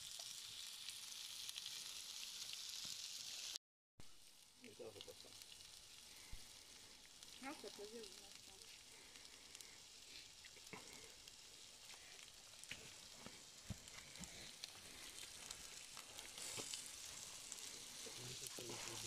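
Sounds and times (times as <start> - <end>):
meat sizzling in a frying pan: 0.0 - 19.0
wood fire crackling: 0.0 - 19.0.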